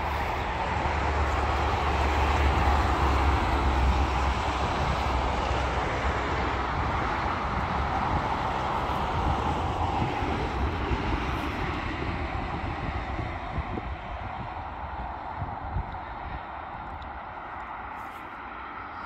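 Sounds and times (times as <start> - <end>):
passing cars on highway: 0.0 - 19.0
wind rumble on microphone: 0.0 - 19.0.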